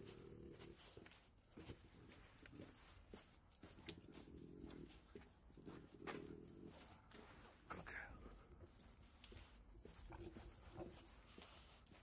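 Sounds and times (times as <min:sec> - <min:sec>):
dog breathing and sniffing: 0:00.0 - 0:12.0.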